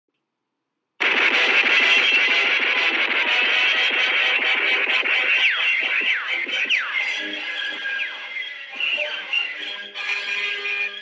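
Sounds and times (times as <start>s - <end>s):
logo music from television speakers: 1.0s - 11.0s.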